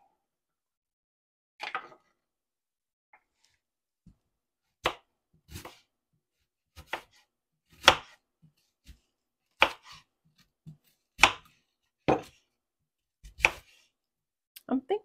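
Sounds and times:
knife slicing onion: 4.8s - 5.9s, 6.7s - 12.5s, 13.2s - 13.9s.

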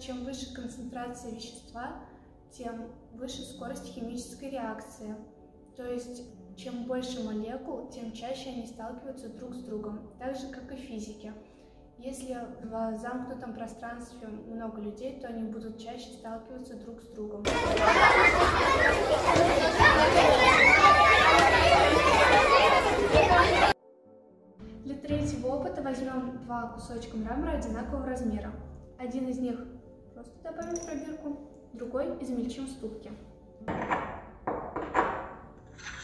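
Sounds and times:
children chattering and calling out: 17.5s - 23.8s
objects clinking on glass and porcelain: 30.6s - 31.0s.

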